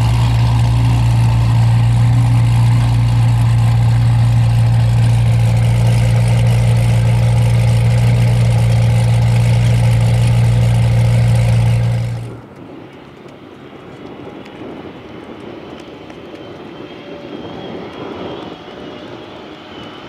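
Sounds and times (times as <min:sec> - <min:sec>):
sports cars idling: 0:00.0 - 0:13.2.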